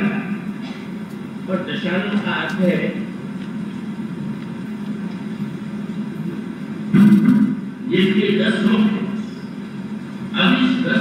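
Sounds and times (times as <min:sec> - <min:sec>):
low rumbling background noise: 0:00.0 - 0:11.0.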